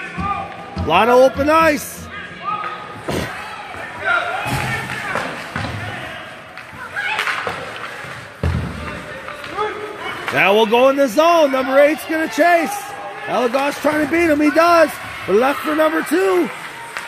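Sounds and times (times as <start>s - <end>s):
spectators' voices: 0.0s - 17.0s
hockey sticks and puck knocking: 4.5s - 5.9s, 6.5s - 10.6s.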